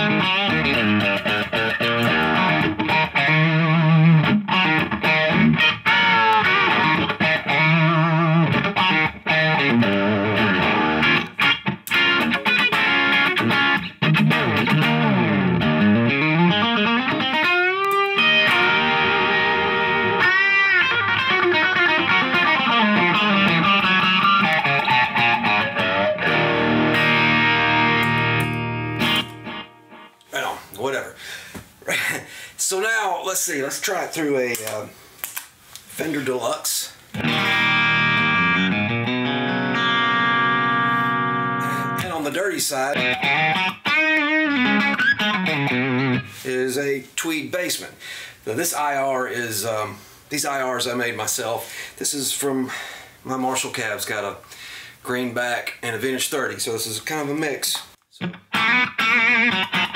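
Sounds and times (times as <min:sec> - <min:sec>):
overdriven electric guitar riff: 0:00.0 - 0:30.3, 0:37.1 - 0:46.4, 0:58.2 - 0:59.9.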